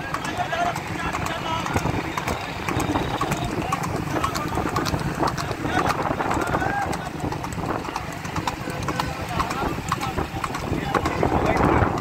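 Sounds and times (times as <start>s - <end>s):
men shouting: 0.0s - 11.6s
horse hoofbeats on pavement: 0.0s - 12.0s.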